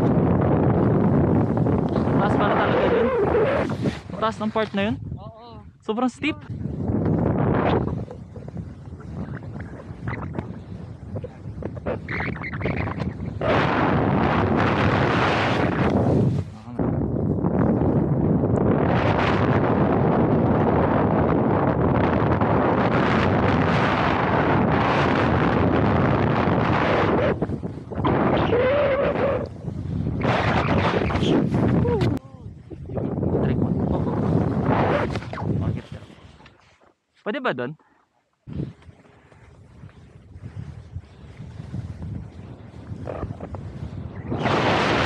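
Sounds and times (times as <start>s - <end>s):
wind rushing over microphone: 0.0s - 36.7s, 38.4s - 45.0s.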